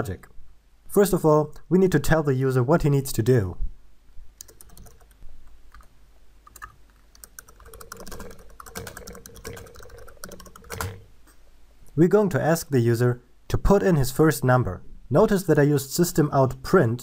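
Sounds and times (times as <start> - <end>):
computer keyboard typing: 4.4 - 5.9, 6.5 - 11.1.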